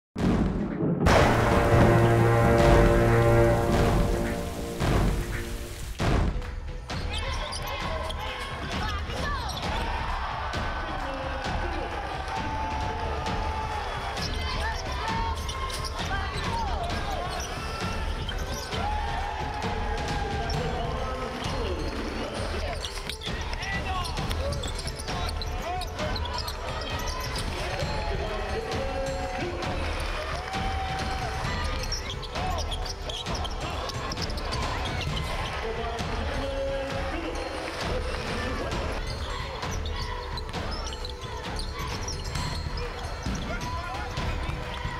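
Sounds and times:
background music: 0.2s - 44.9s
indistinct players' voices: 0.5s - 6.0s
sneakers squeaking: 7.0s - 9.7s, 14.2s - 18.7s, 21.3s - 27.8s, 31.5s - 35.6s, 38.9s - 44.9s.

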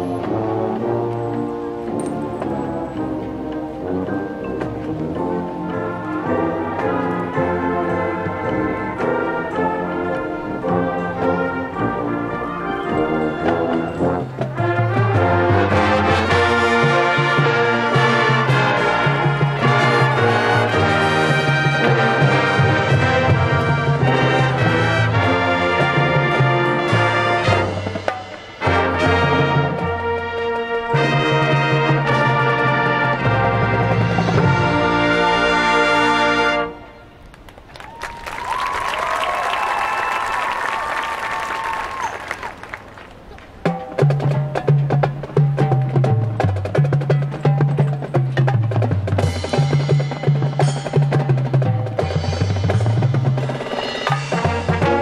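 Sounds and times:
marching band playing: 0.0s - 55.0s.

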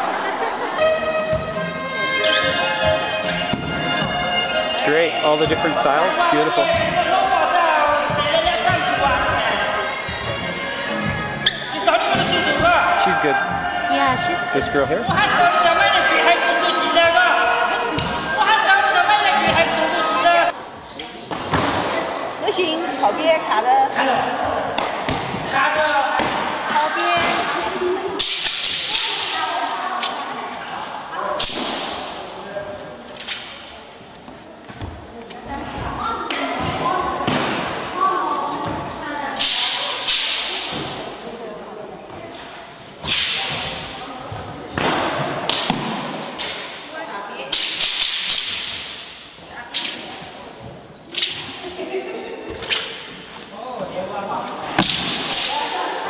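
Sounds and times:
sharp crack with echo: 28.2s - 30.2s, 31.4s - 32.3s, 39.4s - 41.0s, 43.0s - 43.9s, 47.5s - 50.1s, 54.6s - 55.9s.

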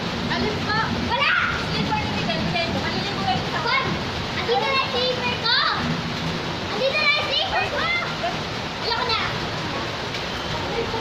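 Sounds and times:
rain on concrete and puddles: 0.0s - 11.0s
children calling and squealing: 0.2s - 11.0s.

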